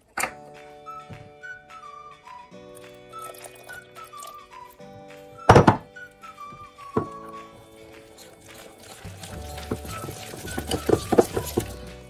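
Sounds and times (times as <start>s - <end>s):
background music with whistled melody: 0.2s - 12.0s
whisk knocking on glass bowl: 7.0s - 12.0s.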